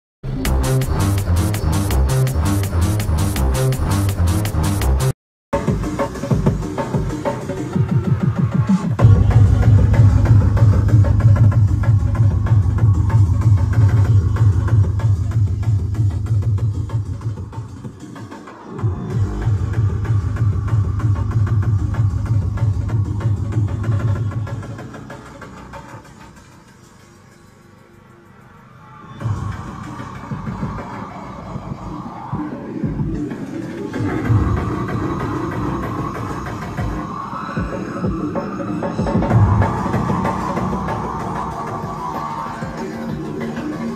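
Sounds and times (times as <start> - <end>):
electronic dance music with heavy bass: 0.2 - 43.9.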